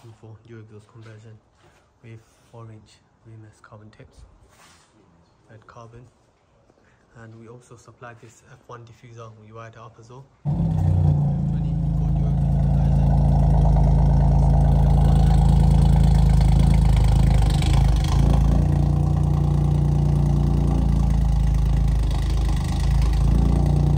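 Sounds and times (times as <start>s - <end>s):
car exhaust drone at idle: 10.5s - 23.9s.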